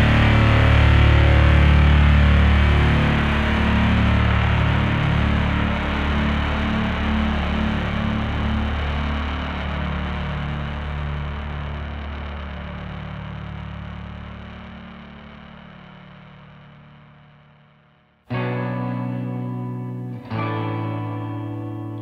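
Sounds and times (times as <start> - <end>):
bass and distorted guitar chord: 0.0 - 22.0
distortion hiss: 0.0 - 22.0.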